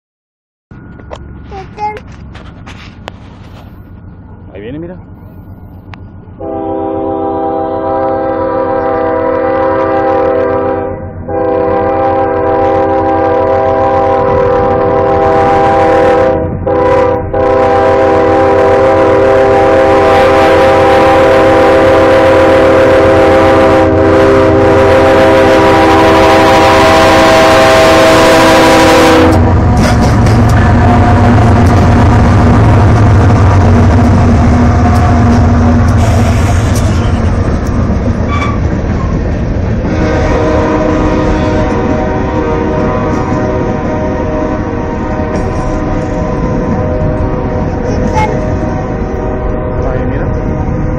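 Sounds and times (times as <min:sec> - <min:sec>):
freight train rumbling past: 0:00.7 - 0:50.9
locomotive air horn blasts: 0:06.4 - 0:31.5, 0:39.9 - 0:50.9
wheels clacking over rail joints: 0:29.6 - 0:30.8.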